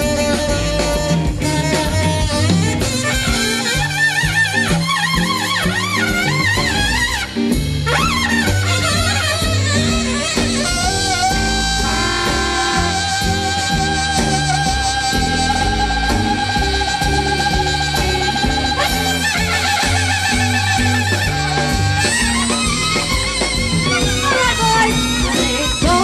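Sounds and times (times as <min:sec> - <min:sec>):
swing band playing: 0:00.0 - 0:26.0.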